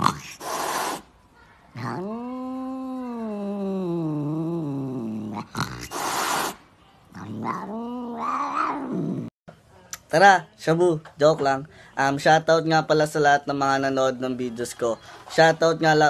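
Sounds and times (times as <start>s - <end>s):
cat hissing: 0.0s - 9.3s
cat yowling: 1.8s - 6.6s, 7.2s - 9.2s.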